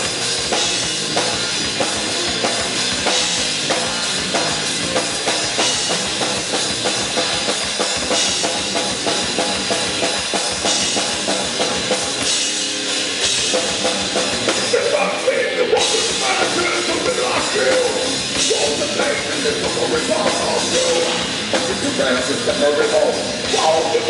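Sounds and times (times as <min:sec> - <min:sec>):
drum kit fast beat: 0:00.0 - 0:24.0
metal band playing: 0:00.0 - 0:24.0.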